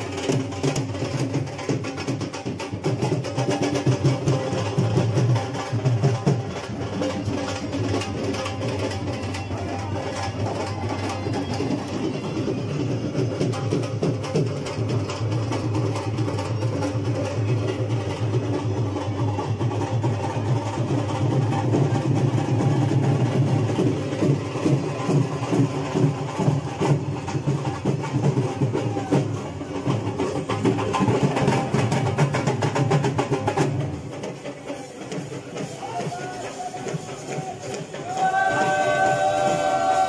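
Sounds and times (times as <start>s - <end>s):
dhol drum beating: 0.0s - 40.0s
voices: 34.6s - 40.0s.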